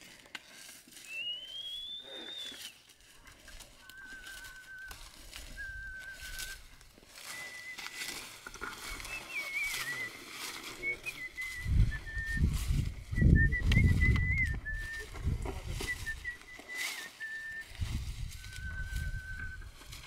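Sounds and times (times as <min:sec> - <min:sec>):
high wavering whistle: 0:01.1 - 0:02.7, 0:03.9 - 0:10.2, 0:10.8 - 0:15.2, 0:15.8 - 0:20.0
field ploughing: 0:04.1 - 0:12.3.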